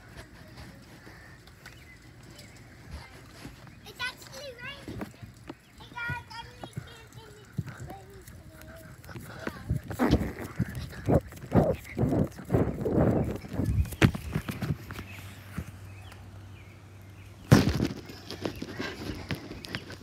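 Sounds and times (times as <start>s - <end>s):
thuds on trampoline mat: 17.5s - 18.1s.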